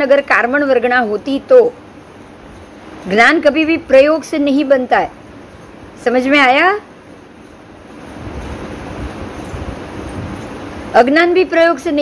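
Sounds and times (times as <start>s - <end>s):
steady rushing noise: 0.0s - 12.0s.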